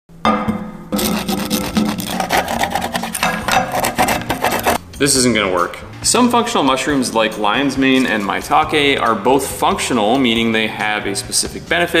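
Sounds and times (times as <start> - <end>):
knife rasping on hard mushroom: 1.0 - 4.8.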